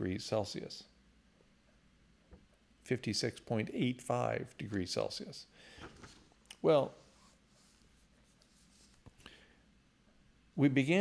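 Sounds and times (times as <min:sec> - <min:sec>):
faint paper rustling: 0:05.7 - 0:09.2.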